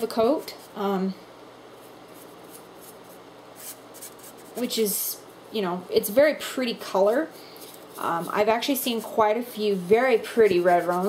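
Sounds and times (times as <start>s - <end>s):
faint room tone hiss: 0.0s - 11.0s
paintbrush scratching in metal pan: 10.2s - 11.0s.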